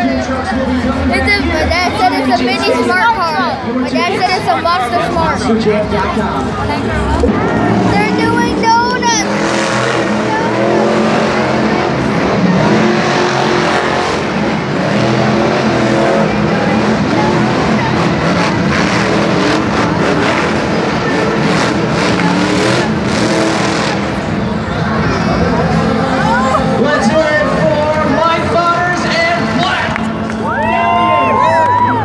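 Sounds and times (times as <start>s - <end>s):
monster truck engines revving: 0.0s - 32.0s.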